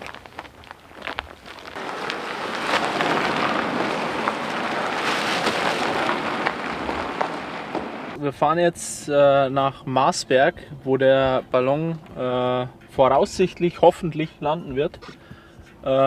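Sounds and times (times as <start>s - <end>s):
tyres crunching gravel: 0.0s - 8.2s.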